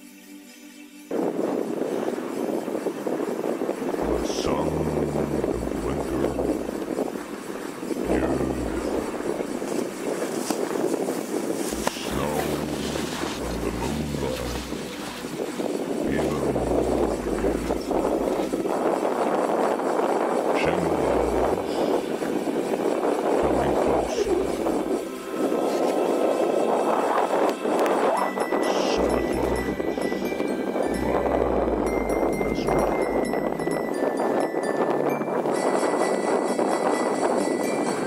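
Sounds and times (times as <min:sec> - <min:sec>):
wind on microphone: 0:01.1 - 0:38.0
faint voices: 0:03.9 - 0:10.2, 0:11.6 - 0:19.0, 0:20.5 - 0:34.0
low buffeting rumbles: 0:03.9 - 0:10.4, 0:11.5 - 0:19.0, 0:20.6 - 0:25.7, 0:29.0 - 0:34.8
skis scraping on snow: 0:09.5 - 0:16.1.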